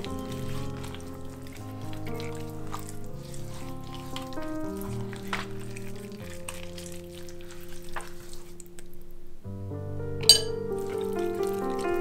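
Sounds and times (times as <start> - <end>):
hands massaging raw chicken: 0.0 - 8.9, 10.5 - 12.0
background music: 0.0 - 12.0
sharp bright clink: 10.2 - 10.6.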